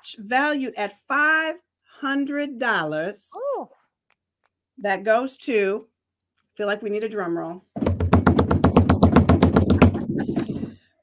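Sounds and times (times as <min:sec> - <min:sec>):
rapid hand taps: 0:07.8 - 0:10.6.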